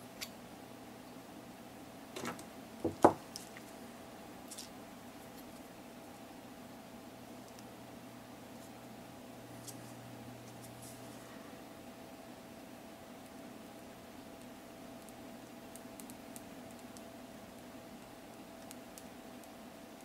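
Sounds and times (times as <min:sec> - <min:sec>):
faint steady hum: 0:00.0 - 0:20.0
knocks on wooden workbench: 0:02.2 - 0:03.2.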